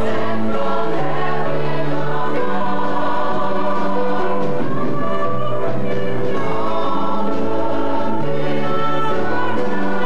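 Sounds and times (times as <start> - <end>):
group singing slow song: 0.0 - 10.0.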